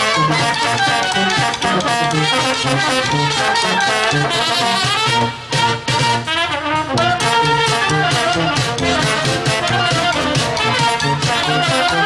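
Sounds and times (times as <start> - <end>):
bass drum and snare: 0.0 - 12.0
brass band playing: 0.0 - 12.0.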